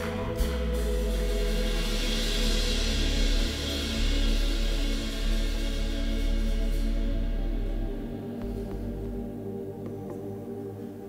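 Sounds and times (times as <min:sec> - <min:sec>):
drums: 0:00.0 - 0:10.2
soft ambient pad: 0:00.0 - 0:11.0.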